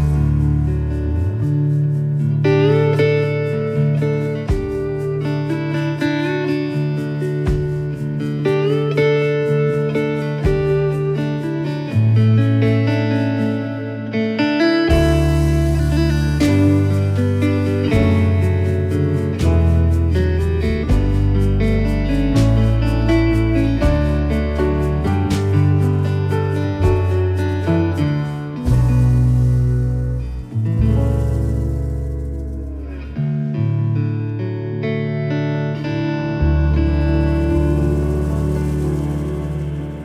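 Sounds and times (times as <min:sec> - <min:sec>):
band with piano and drums: 0:00.0 - 0:13.7, 0:14.4 - 0:33.3, 0:36.6 - 0:40.0
slide guitar melody: 0:00.0 - 0:40.0.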